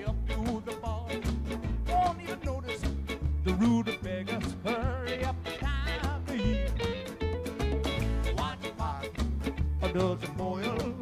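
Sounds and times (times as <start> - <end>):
acoustic and electric guitar: 0.0 - 11.0
congas: 0.0 - 11.0
drum kit: 0.0 - 11.0
upright bass notes: 0.0 - 11.0.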